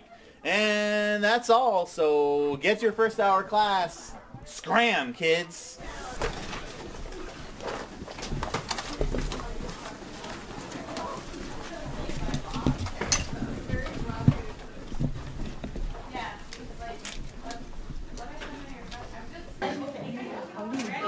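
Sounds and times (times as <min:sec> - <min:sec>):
indistinct chatter: 0:02.7 - 0:21.0
bags shuffling: 0:05.8 - 0:19.6
chairs and desks scraping: 0:05.8 - 0:19.6
footsteps: 0:05.8 - 0:19.6.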